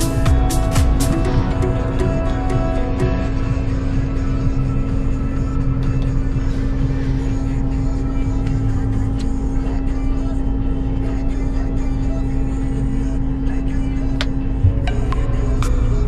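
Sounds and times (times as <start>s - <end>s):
combine harvester running: 0.0s - 10.3s, 13.8s - 16.0s.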